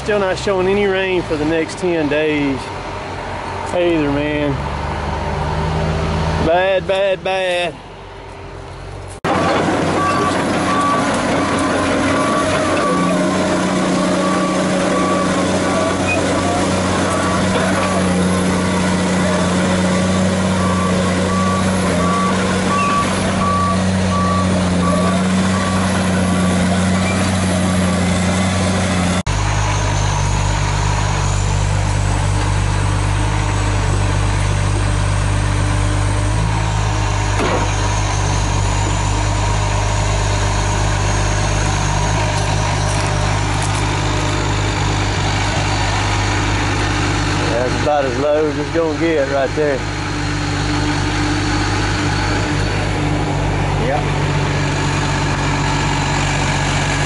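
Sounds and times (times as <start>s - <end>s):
diesel engine running: 0.0s - 57.0s
travel alarm beeping: 20.6s - 25.9s.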